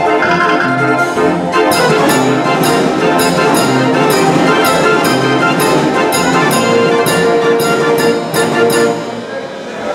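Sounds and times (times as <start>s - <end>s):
organ percussion beat: 0.0s - 9.7s
street organ playing tune: 0.0s - 9.9s.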